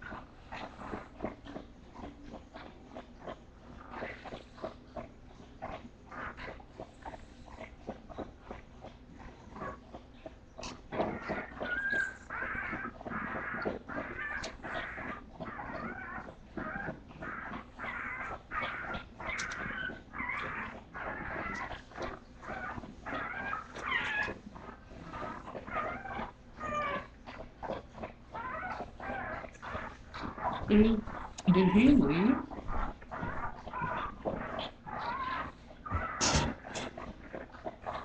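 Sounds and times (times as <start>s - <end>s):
puppies crying: 8.8s - 38.0s.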